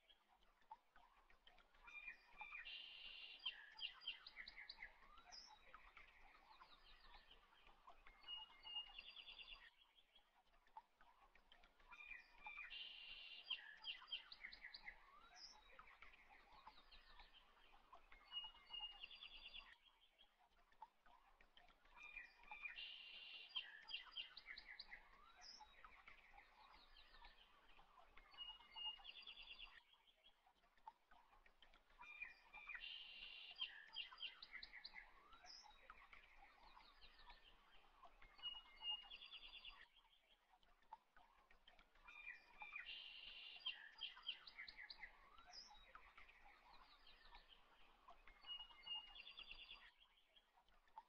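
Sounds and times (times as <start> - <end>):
faint bird chirps and trills: 0.0 - 51.0.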